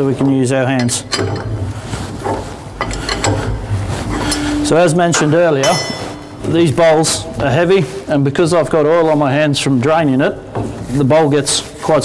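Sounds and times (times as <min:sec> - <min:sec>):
metallic clicks and knocks: 0:00.8 - 0:06.7
low steady hum: 0:01.0 - 0:08.2.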